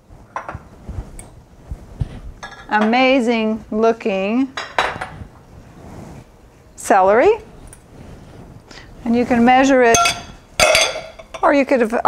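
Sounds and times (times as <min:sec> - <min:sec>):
dishes knocking on counter: 0:04.6 - 0:05.1.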